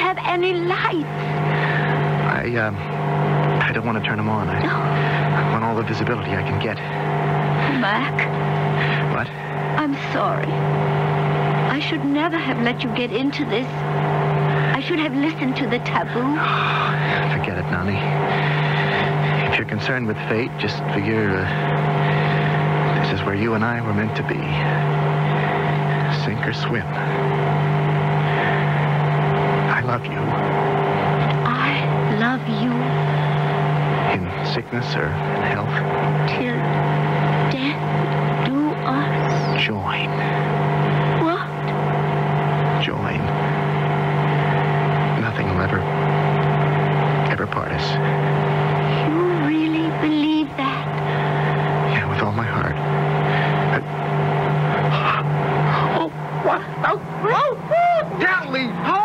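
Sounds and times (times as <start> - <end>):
small plane engine drone: 0.0 - 59.0
voices: 0.0 - 59.0.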